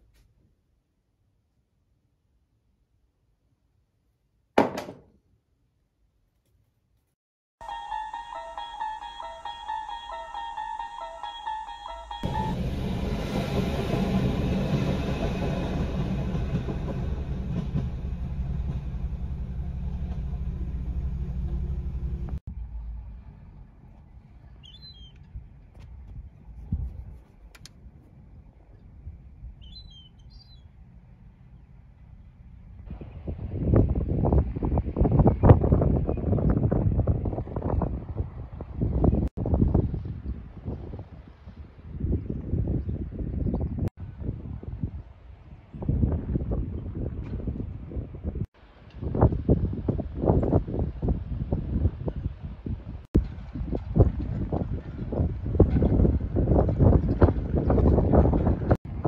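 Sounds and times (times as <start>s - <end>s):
train passing drone: 7.6s - 24.6s
wind buffeting microphone: 32.8s - 59.0s.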